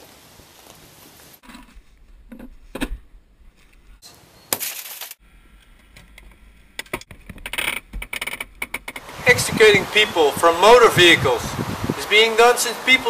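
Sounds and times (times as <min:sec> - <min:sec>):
metallic clicks and rattles: 0:05.6 - 0:09.1.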